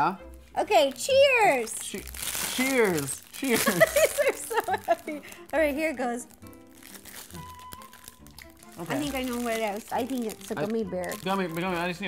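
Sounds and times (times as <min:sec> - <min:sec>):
quiet background music: 0:00.0 - 0:12.0
plastic wrapping crinkling: 0:00.2 - 0:12.0.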